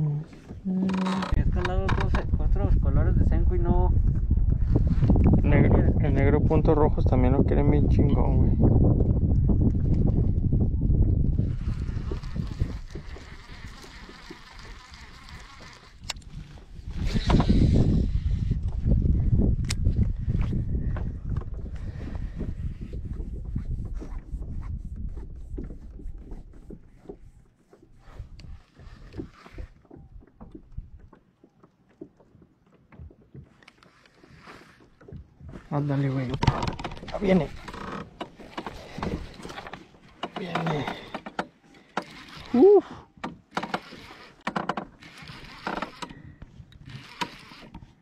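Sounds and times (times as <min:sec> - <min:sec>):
wind rumbling on microphone: 0:00.0 - 0:31.2, 0:34.4 - 0:48.0
fishing gear clicks and knocks: 0:00.4 - 0:02.3, 0:25.6 - 0:48.0.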